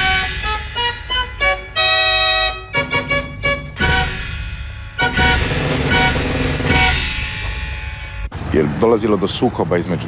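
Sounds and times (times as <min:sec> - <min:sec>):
organ chords: 0:00.0 - 0:08.5.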